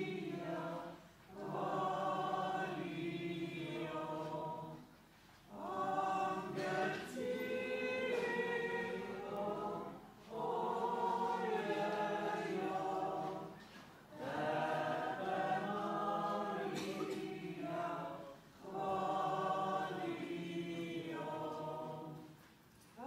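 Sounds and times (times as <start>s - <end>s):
choir singing a hymn: 0.0s - 22.5s.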